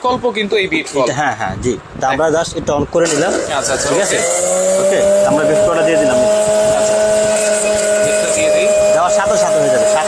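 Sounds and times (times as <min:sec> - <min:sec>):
juicer motor whining: 0:03.3 - 0:10.0.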